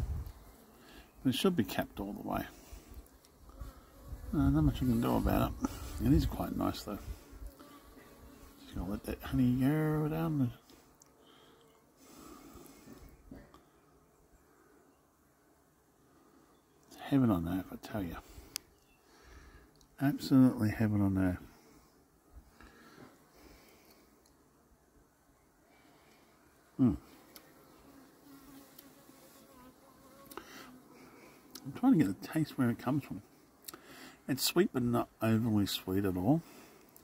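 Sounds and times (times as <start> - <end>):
honeybees buzzing: 0.0 - 14.8, 22.6 - 34.4
faint background hiss: 0.0 - 37.0
faint small ticks: 0.1 - 0.7, 2.8 - 3.8, 7.4 - 8.2, 10.6 - 11.8, 16.7 - 17.0, 18.4 - 20.0, 23.5 - 24.4, 27.1 - 27.6, 28.5 - 29.0, 30.2 - 30.6, 33.6 - 33.9, 36.8 - 37.0.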